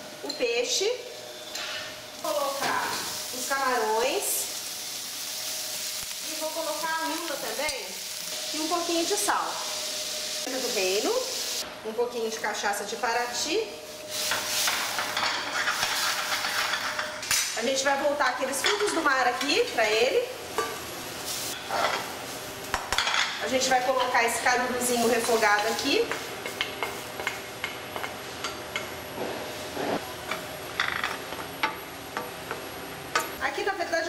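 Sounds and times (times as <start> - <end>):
seafood sizzling in a frying pan: 1.1 - 11.6, 13.2 - 28.4.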